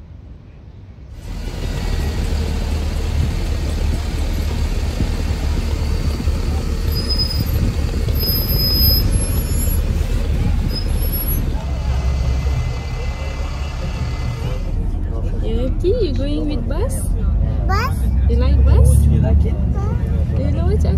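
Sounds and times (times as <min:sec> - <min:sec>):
diesel buses idling: 0:01.1 - 0:20.9
indistinct voices: 0:02.9 - 0:20.9
high squeaks: 0:06.8 - 0:10.0, 0:10.6 - 0:11.5.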